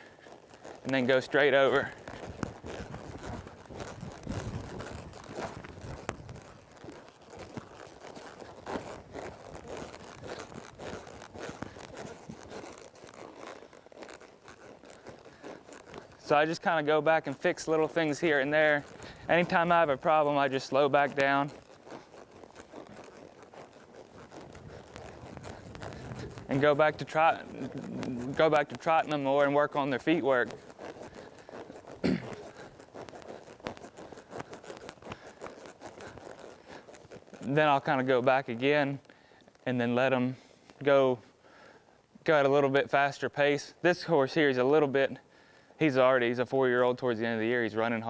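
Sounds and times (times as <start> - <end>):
tack and clothing rustle: 0.0 - 39.7, 40.4 - 42.2
horse hooves thudding in dirt: 0.0 - 48.0.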